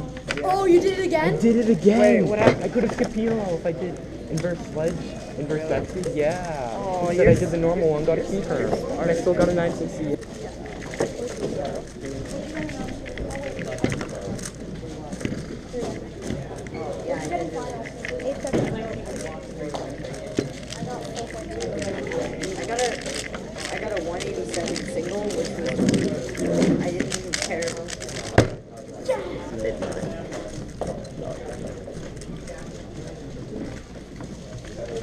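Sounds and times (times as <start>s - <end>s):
chatter of many voices: 0.0s - 35.0s
speed cube clicking: 2.7s - 4.7s, 5.6s - 29.0s.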